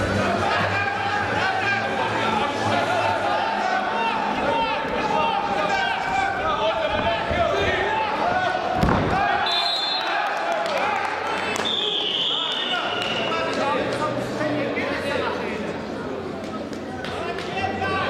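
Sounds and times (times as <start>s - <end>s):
people shouting in a hall: 0.0s - 13.9s
referee's whistle: 9.4s - 10.1s, 11.6s - 13.4s.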